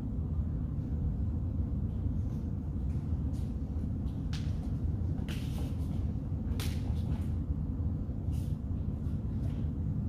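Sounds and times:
steady low rumble: 0.0 - 10.0
uniform snapping swishes: 4.3 - 7.4.

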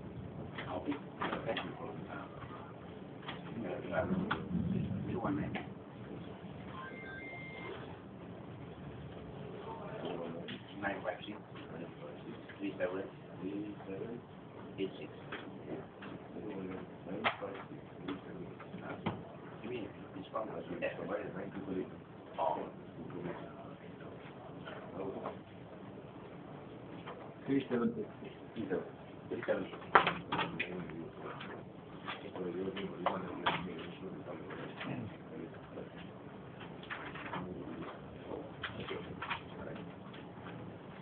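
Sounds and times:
murmur of men's voices: 0.5 - 5.9.

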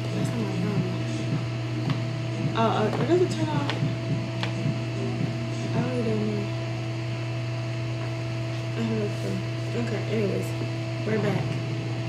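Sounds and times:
steady tones: 0.0 - 7.2
electric fan humming: 0.0 - 12.0.

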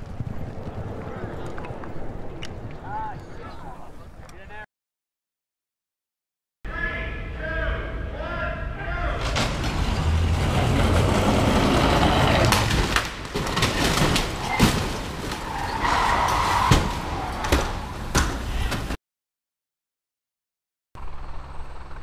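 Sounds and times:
engine and tyre noise: 0.0 - 3.5, 9.1 - 14.4, 15.0 - 18.7, 21.0 - 22.0
cars crashing into stone: 9.2 - 19.0.

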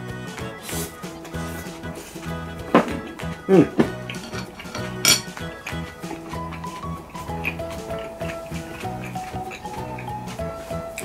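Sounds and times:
background music: 0.0 - 11.0
chopsticks clinking on ceramic bowl: 4.1 - 5.5.

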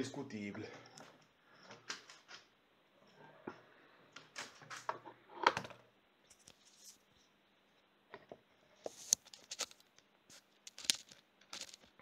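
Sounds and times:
objects being handled clicking: 9.1 - 12.0.

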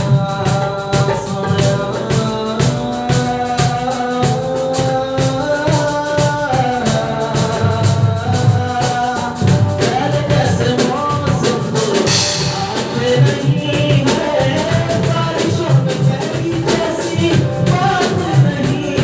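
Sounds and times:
hand drum beat: 0.0 - 19.0
man singing: 0.0 - 19.0.

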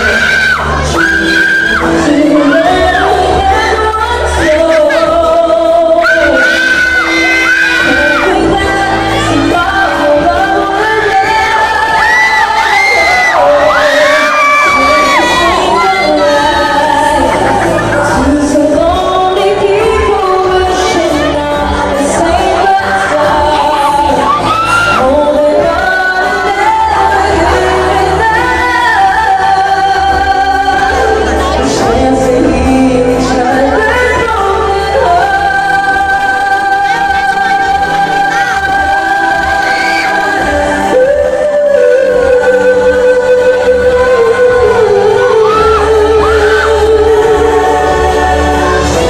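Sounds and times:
amplified music: 0.0 - 49.0
backing track: 0.0 - 49.0
woman singing pop song: 0.0 - 49.0.

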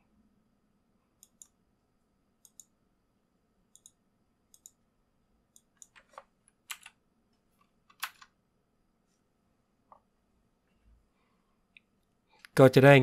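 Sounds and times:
computer mouse clicks: 1.2 - 1.6, 2.4 - 2.8, 3.7 - 4.8, 5.5 - 7.0.

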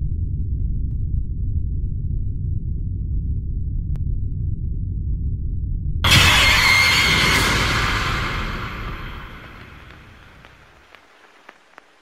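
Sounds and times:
low rumble: 6.1 - 10.7.

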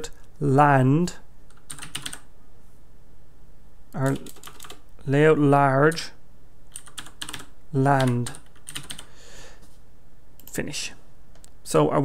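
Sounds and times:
computer keyboard typing: 1.5 - 2.3, 4.0 - 4.8, 6.7 - 9.1.

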